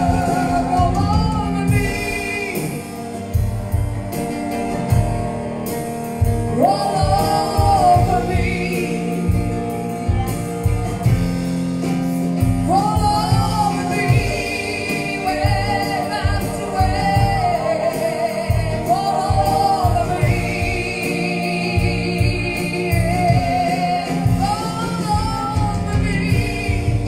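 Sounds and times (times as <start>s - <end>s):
woman singing with vibrato: 0.0s - 2.9s, 6.3s - 10.2s, 12.5s - 27.0s.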